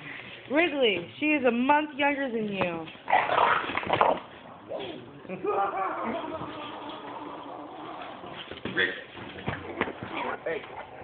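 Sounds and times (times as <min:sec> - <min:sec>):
puppies playing roughly: 0:06.2 - 0:11.0.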